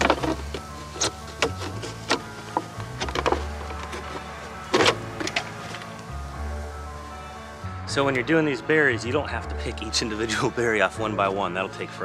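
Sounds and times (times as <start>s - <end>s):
plastic jug crackling as cut: 0.0s - 6.0s
background music with bass: 0.0s - 12.0s.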